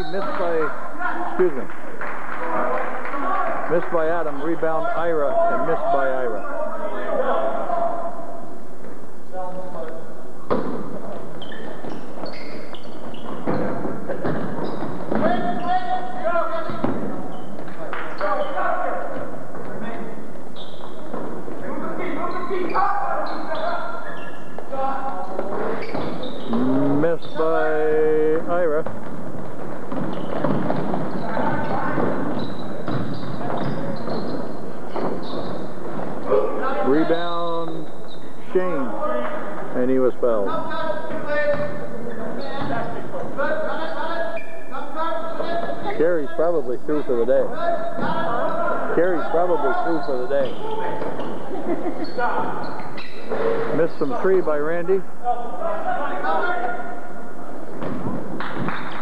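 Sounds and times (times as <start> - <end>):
crowd and players calling: 0.0 - 59.0
basketball bouncing on hardwood: 28.8 - 36.3.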